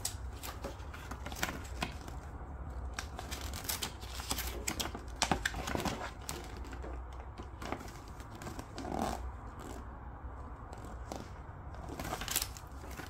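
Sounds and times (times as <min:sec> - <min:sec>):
paper rustling and crackling: 0:00.0 - 0:09.8, 0:10.7 - 0:13.0.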